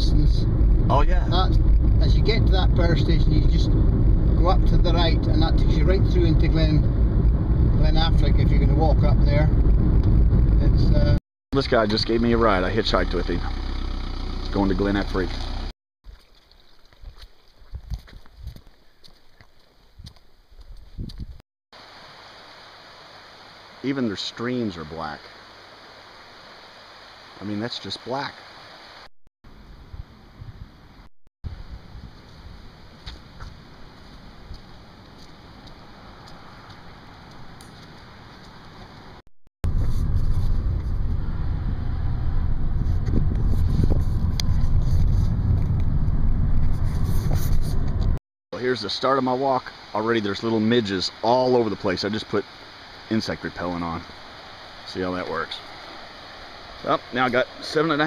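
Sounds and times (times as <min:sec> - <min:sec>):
car driving rumble from inside: 0:00.0 - 0:11.2, 0:39.7 - 0:48.2.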